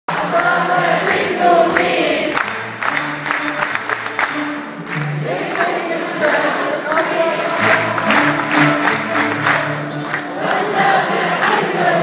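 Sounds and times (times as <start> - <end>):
choir singing: 0.1 - 2.6, 5.0 - 12.0
orchestra playing: 2.4 - 6.2, 6.8 - 10.6.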